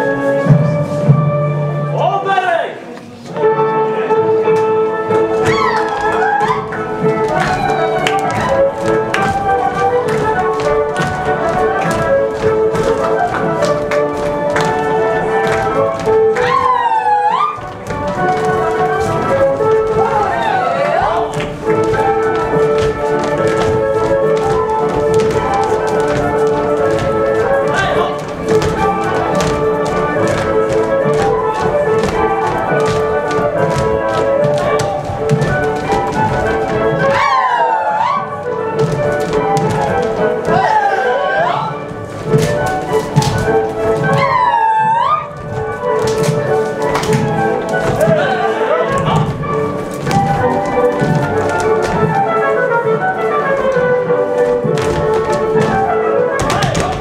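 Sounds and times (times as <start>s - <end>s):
folk dance music: 0.0s - 57.0s
shoes stamping on stage floor: 4.5s - 57.0s.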